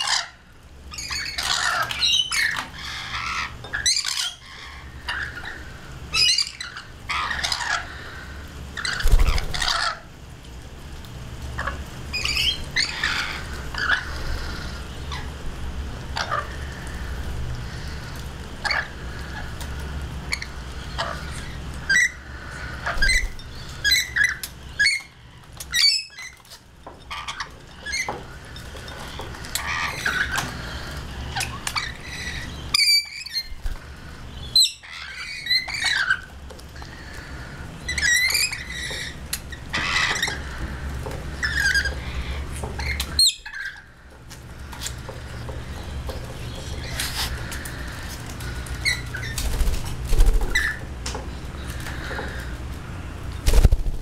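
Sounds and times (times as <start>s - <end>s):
parrots squawking and screeching: 0.0s - 10.1s, 11.4s - 54.0s
steady low hum: 0.0s - 54.0s.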